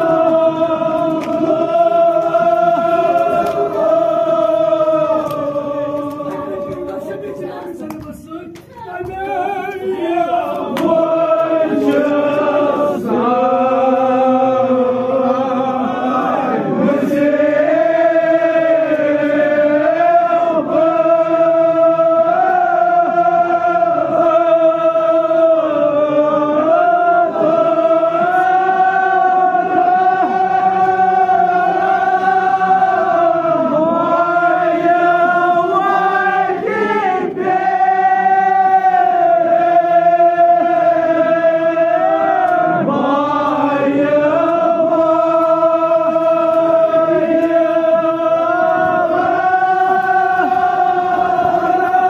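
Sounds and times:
men chanting an elegy: 0.0s - 52.0s
man chanting through a microphone: 5.7s - 16.2s.

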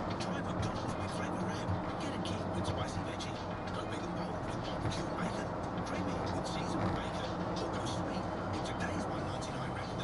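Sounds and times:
car road and engine noise: 0.0s - 10.0s
faint radio voice talking: 0.2s - 10.0s.

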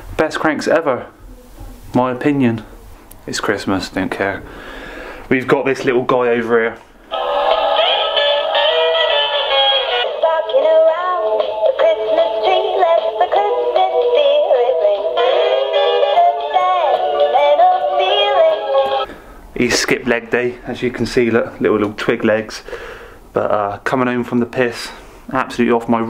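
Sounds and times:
toy singing through small speaker: 7.1s - 19.0s.

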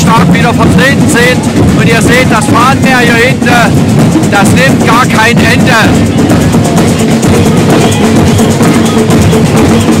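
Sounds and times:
drums beaten fast: 0.0s - 10.0s
loud crowd voices: 0.0s - 10.0s.

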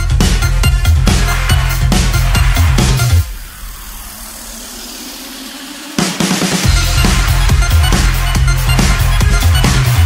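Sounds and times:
electronic dance beat: 0.0s - 10.0s.

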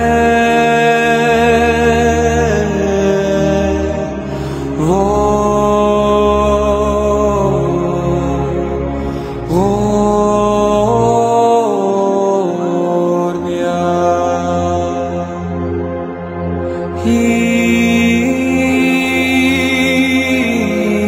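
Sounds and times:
slow chant-like music over drone: 0.0s - 21.0s.

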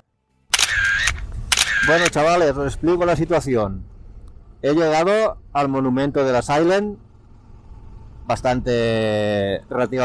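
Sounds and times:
camera shutter: 0.5s - 2.3s.

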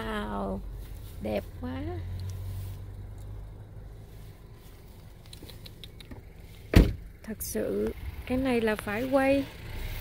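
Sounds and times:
car cabin hum: 0.0s - 9.6s
faint clicks: 5.0s - 6.3s.

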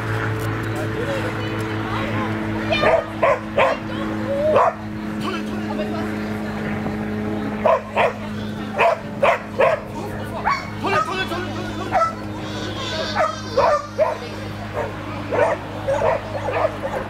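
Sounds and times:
steady low hum: 0.0s - 17.0s
dog barking: 2.7s - 3.8s, 4.5s - 4.8s, 7.6s - 8.2s, 8.8s - 10.7s, 11.9s - 12.2s, 13.2s - 17.0s.

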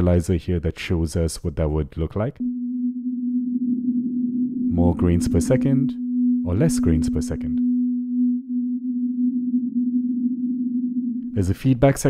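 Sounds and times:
grainy synth tone: 2.4s - 11.4s.

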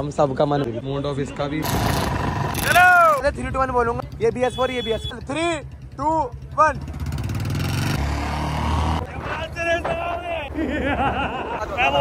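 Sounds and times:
motorcycles accelerating hard: 1.6s - 3.0s, 6.6s - 9.1s.

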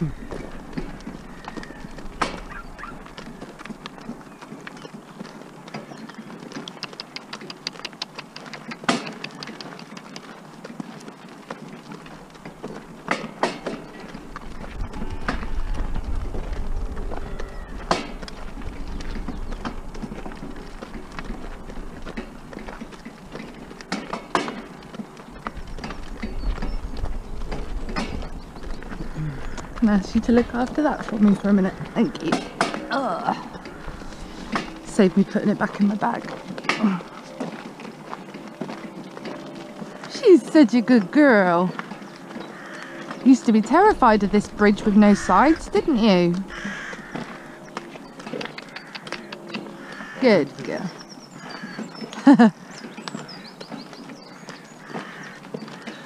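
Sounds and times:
cart knocking and rattling: 0.0s - 56.0s
hooves crunching on gravel: 0.0s - 56.0s
low rumble: 13.8s - 42.2s.

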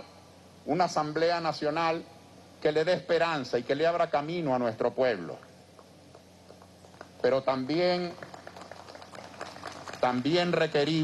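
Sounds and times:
man speaking into a microphone: 0.0s - 5.5s, 7.2s - 8.2s, 10.0s - 11.0s
low steady hum: 0.0s - 11.0s.

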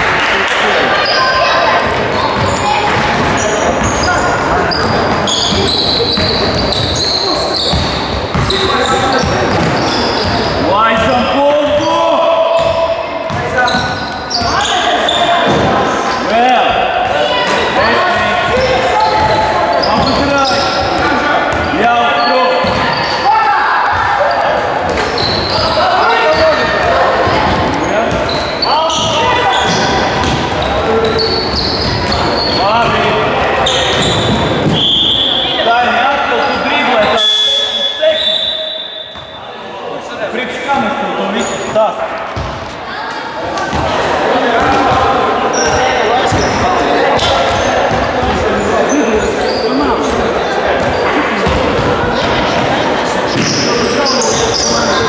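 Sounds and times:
people calling out: 0.0s - 39.7s
shoes squeaking: 0.9s - 11.1s, 11.7s - 39.6s, 41.3s - 55.0s
ball bouncing on wooden court: 1.8s - 7.0s, 7.6s - 10.5s, 22.6s - 23.2s, 26.3s - 34.9s, 42.3s - 42.8s, 43.6s - 44.0s, 53.3s - 53.6s
referee's whistle: 33.6s - 35.7s, 37.1s - 39.4s.

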